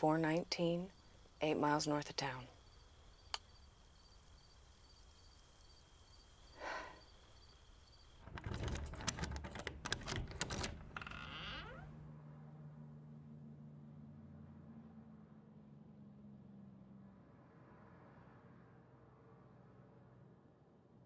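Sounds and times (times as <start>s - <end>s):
faint insect chirping: 0.0s - 11.9s
metallic clicks and rattles: 8.2s - 11.1s
door creaking open: 8.2s - 12.0s.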